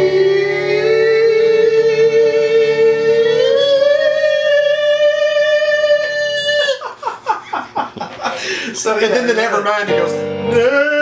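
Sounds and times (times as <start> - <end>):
man singing high note: 0.0 - 6.9, 10.1 - 11.0
man laughing: 6.1 - 9.5.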